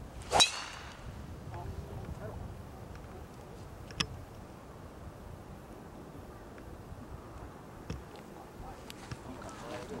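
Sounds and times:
golf club swish: 0.2 - 1.1
metallic crack of club on ball: 0.3 - 1.0.

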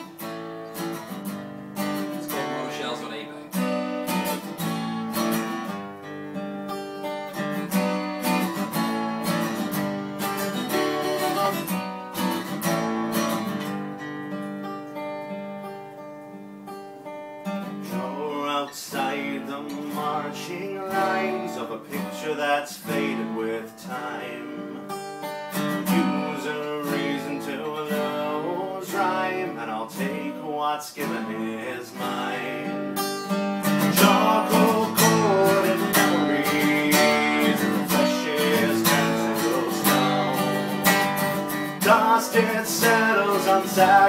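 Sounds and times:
acoustic guitars strumming: 0.0 - 44.0.

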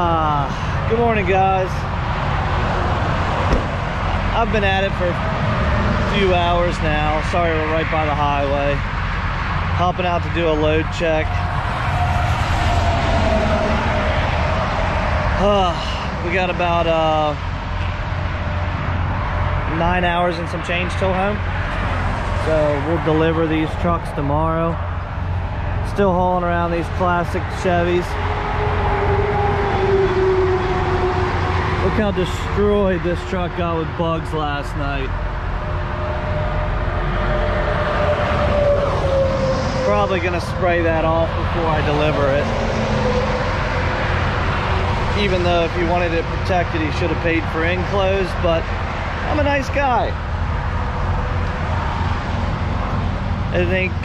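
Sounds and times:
highway traffic passing: 0.0 - 54.0
short knock: 3.5 - 3.8.

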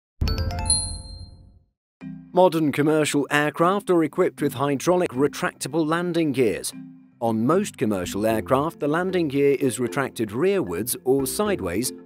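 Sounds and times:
logo chime with bell notes: 0.2 - 1.6.

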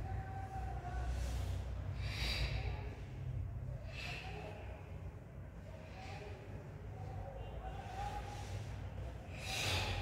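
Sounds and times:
low room hum: 0.0 - 10.0
person breathing sharply: 1.2 - 3.1, 9.3 - 10.0.

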